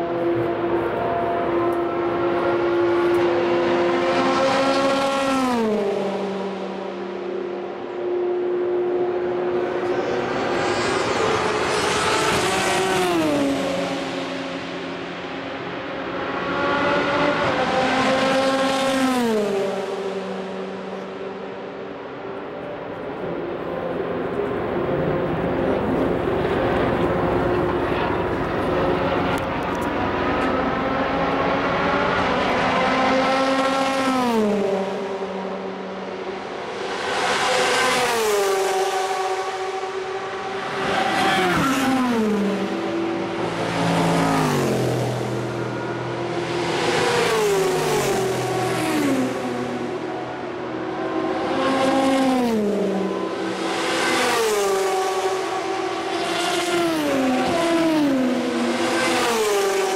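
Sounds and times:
distant engines: 0.0s - 59.9s
race cars passing at speed: 0.0s - 59.9s.

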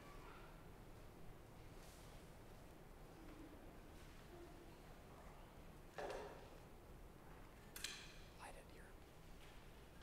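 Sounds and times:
faint whispered voice: 8.4s - 9.0s.

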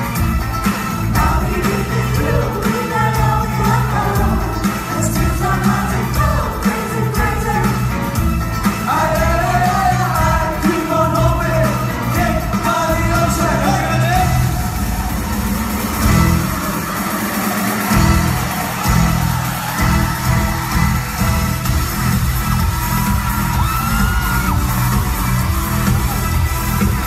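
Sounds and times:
loud live dance-pop music: 0.0s - 27.0s.

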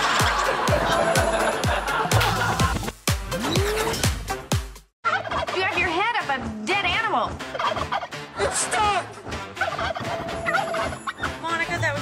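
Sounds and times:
turkey gobbling: 5.1s - 5.6s, 7.5s - 8.1s, 9.6s - 11.4s.

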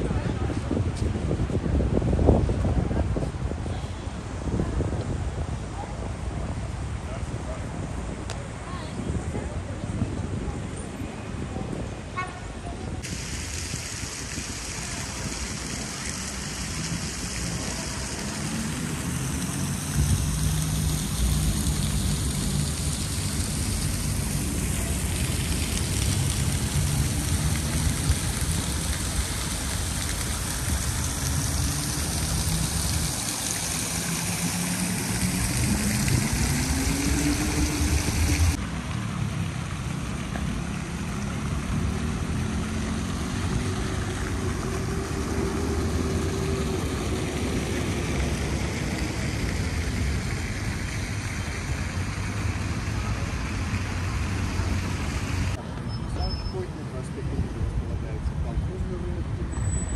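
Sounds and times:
fountain water splashing into pool: 0.0s - 55.6s, 56.2s - 59.9s
city traffic: 0.0s - 59.9s
vehicle engines passing: 0.0s - 59.9s.

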